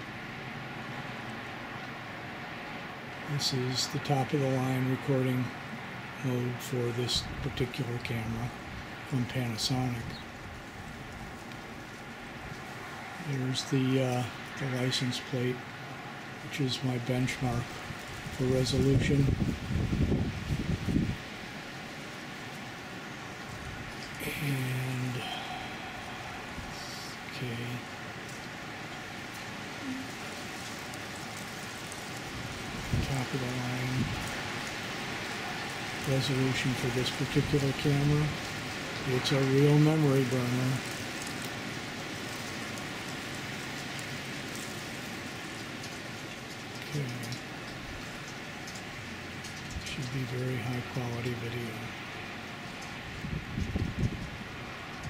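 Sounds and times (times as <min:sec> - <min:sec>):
outdoor ambient hiss: 0:00.0 - 0:55.0
person speaking: 0:06.2 - 0:10.2, 0:13.2 - 0:15.6, 0:16.5 - 0:17.7, 0:24.2 - 0:28.0, 0:29.8 - 0:30.2, 0:33.0 - 0:34.2, 0:36.0 - 0:38.4, 0:39.0 - 0:40.8, 0:49.9 - 0:52.0.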